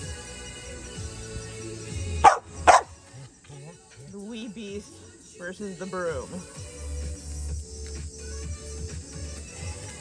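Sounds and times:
background music: 0:00.0 - 0:10.0
dog barking: 0:02.2 - 0:02.9.

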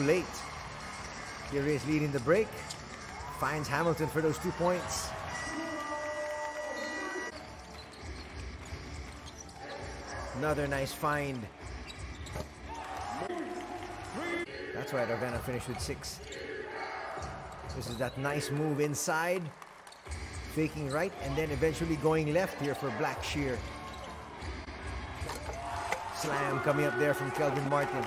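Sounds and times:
arena noise: 0:00.0 - 0:28.0.

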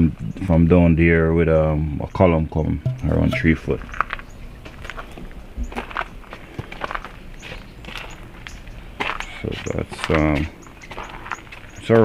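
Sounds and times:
footsteps on gravel: 0:03.4 - 0:08.2, 0:09.0 - 0:12.0.

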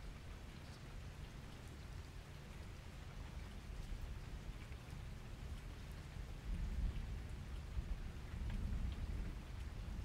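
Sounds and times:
rain-like background noise: 0:00.0 - 0:10.0.

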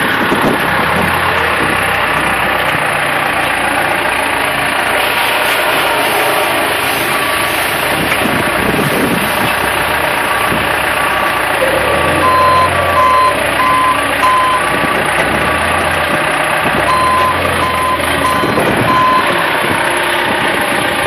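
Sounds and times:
engine humming: 0:00.0 - 0:21.0
forklift reversing alarm beeping: 0:11.6 - 0:15.1, 0:16.9 - 0:19.4.

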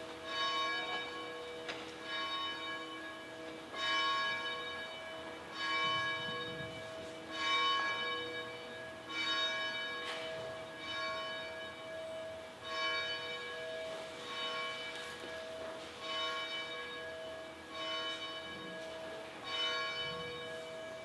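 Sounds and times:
church bell tolling: 0:00.0 - 0:21.0.

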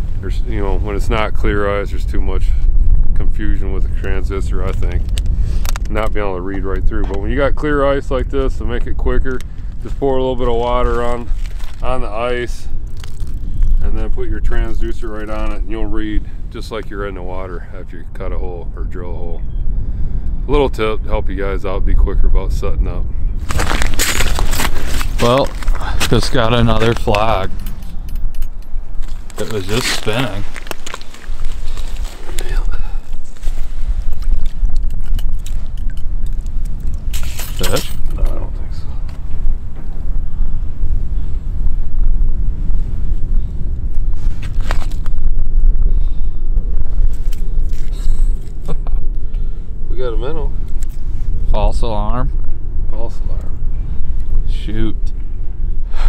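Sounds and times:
wind rumbling on microphone: 0:00.0 - 0:56.0
footsteps crunching on icy snow: 0:10.9 - 0:11.8, 0:23.4 - 0:27.5, 0:29.0 - 0:34.6.

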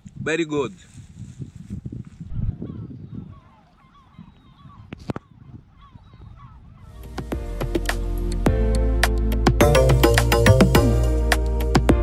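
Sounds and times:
wind rumble: 0:00.0 - 0:03.6
music: 0:07.0 - 0:12.0.

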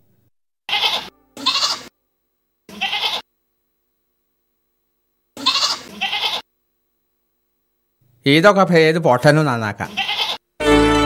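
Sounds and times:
goats bleating: 0:00.7 - 0:01.9, 0:02.7 - 0:03.2, 0:05.4 - 0:06.4, 0:09.9 - 0:10.4.

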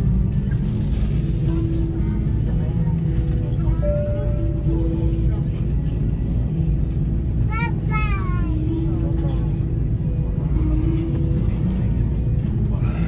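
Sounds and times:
low engine and wheel rumble: 0:00.0 - 0:13.0.

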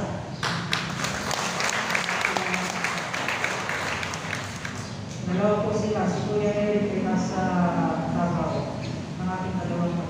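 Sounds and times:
congregation applauding: 0:00.4 - 0:05.0.

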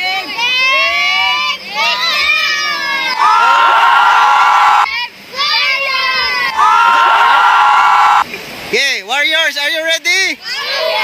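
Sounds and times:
children shouting and cheering: 0:00.2 - 0:08.3, 0:10.4 - 0:11.0
voices calling: 0:01.4 - 0:08.2.

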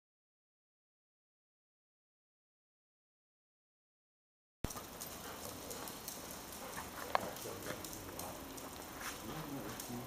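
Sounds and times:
dog claws clicking on concrete: 0:04.7 - 0:10.0.

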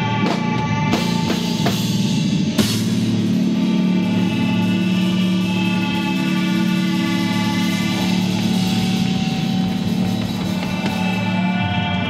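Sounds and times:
electric guitars droning chord: 0:00.0 - 0:12.0.

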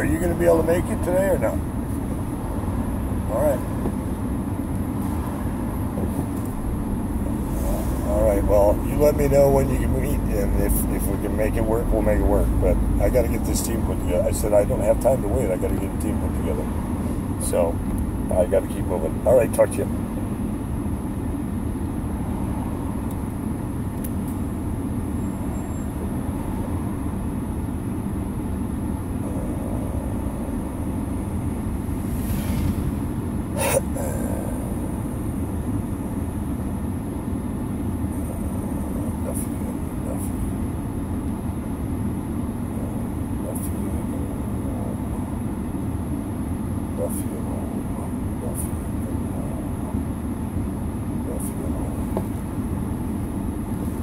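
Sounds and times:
car cabin low rumble: 0:00.0 - 0:54.0.

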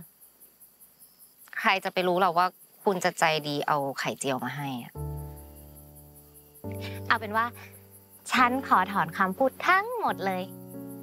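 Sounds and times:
crickets chirring: 0:00.0 - 0:11.0
woman's voice: 0:01.5 - 0:05.0, 0:06.8 - 0:10.5.

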